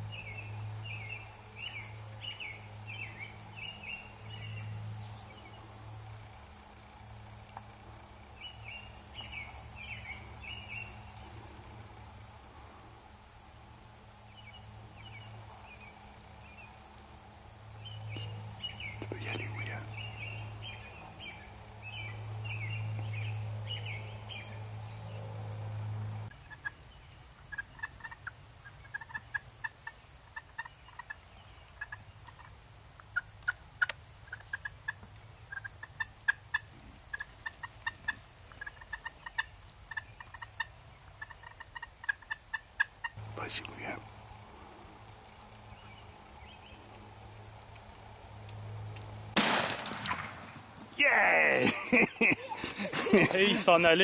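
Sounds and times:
turkey gobbling: 26.4 - 26.8, 27.4 - 31.2, 31.8 - 43.2.

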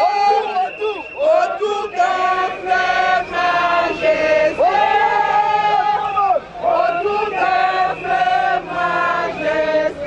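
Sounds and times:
crowd singing a chant: 0.3 - 10.0.

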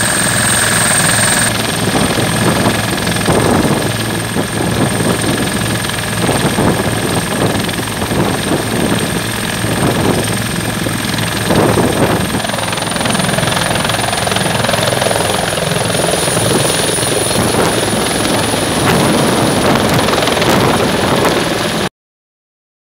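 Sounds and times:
helicopter rotor chop: 0.0 - 21.9
helicopter turbine whine: 0.0 - 21.9.

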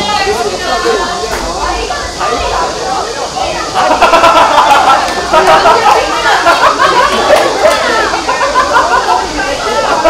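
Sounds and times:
people calling out and talking: 0.0 - 10.0.

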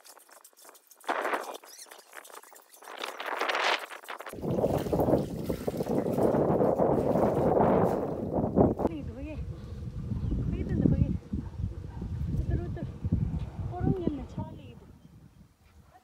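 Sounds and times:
water scooped and splashed: 0.0 - 8.1
loud low rumbling: 8.4 - 15.0.

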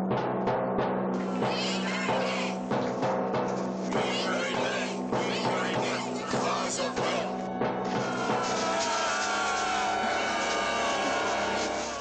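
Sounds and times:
drum strikes: 0.0 - 12.0
high wavering shrieking tones: 8.0 - 12.0.

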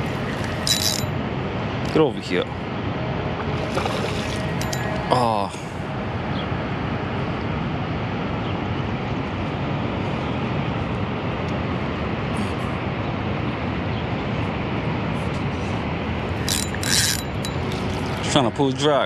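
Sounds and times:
outdoor background roar: 0.0 - 19.0.

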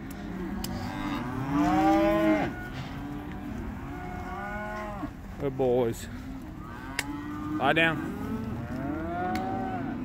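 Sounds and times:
cow mooing: 0.4 - 5.1, 6.6 - 10.0.

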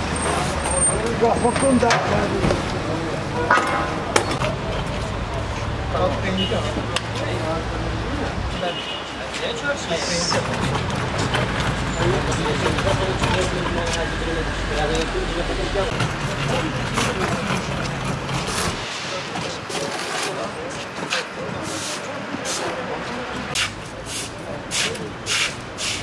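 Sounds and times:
traffic: 0.0 - 26.0
voices: 0.0 - 26.0
broom sweeping wet paving: 18.3 - 26.0.

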